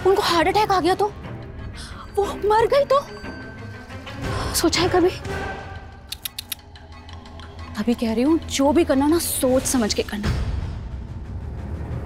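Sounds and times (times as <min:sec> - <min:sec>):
soft dramatic background music: 0:00.0 - 0:12.0
sharp high clicks: 0:06.1 - 0:06.8.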